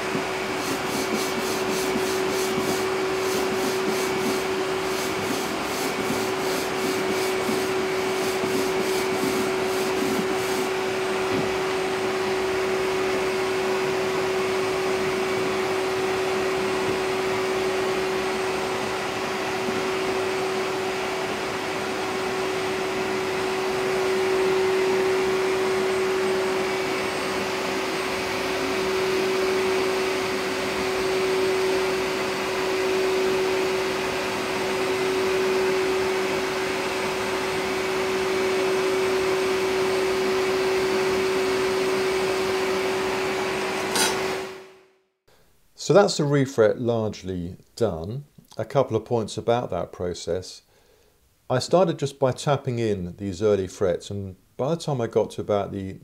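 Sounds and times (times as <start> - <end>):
vacuum machine humming: 0.0 - 44.8.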